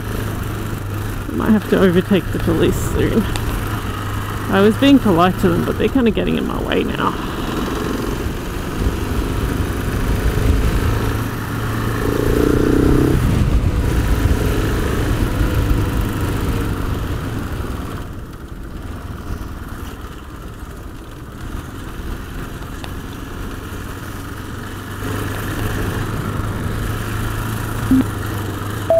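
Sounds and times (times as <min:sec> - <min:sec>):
motorcycle engine running: 0:00.0 - 0:28.9.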